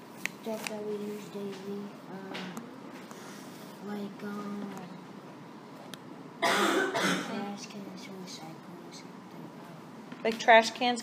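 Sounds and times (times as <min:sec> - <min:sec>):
faint room noise: 0:00.0 - 0:11.0
person coughing: 0:06.4 - 0:07.5.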